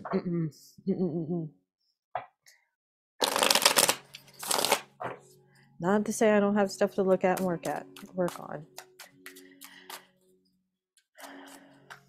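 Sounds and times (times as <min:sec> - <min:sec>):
cards being shuffled: 0:03.2 - 0:05.2, 0:07.4 - 0:10.1.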